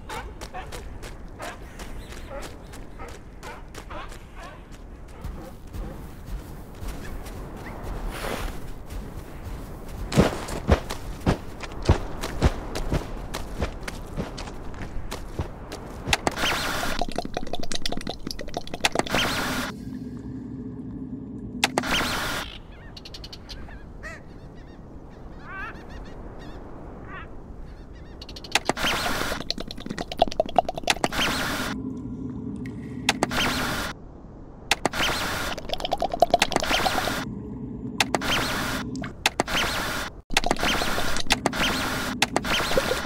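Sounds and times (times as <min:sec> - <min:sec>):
loud bursts of noise: 0:31.1 - 0:34.0.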